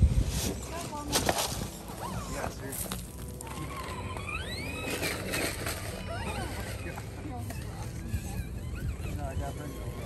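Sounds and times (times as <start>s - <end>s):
toy truck motor whining: 1.8s - 10.0s.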